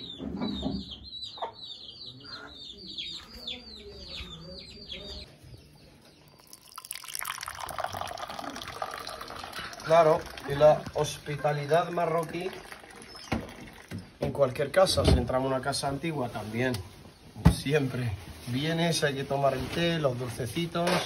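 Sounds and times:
chicks peeping: 0:00.0 - 0:06.4
tea pouring into glass: 0:06.3 - 0:14.1.

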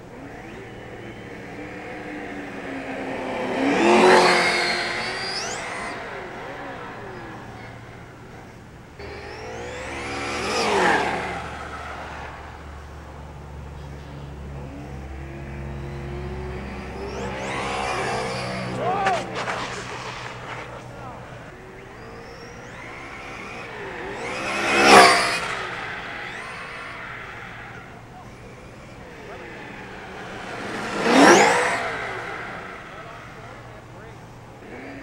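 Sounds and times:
rc truck motor whine passing: 0:00.0 - 0:35.0.

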